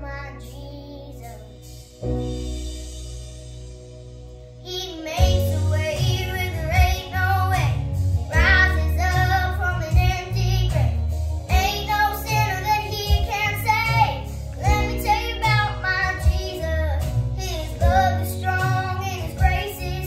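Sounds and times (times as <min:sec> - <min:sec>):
girl singing with vibrato: 0:00.0 - 0:01.6, 0:04.7 - 0:20.0
instrumental accompaniment with bass: 0:00.0 - 0:20.0.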